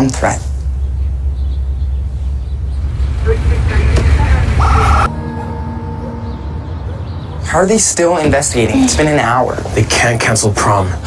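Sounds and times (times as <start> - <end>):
loud low rumble: 0.7 - 8.8.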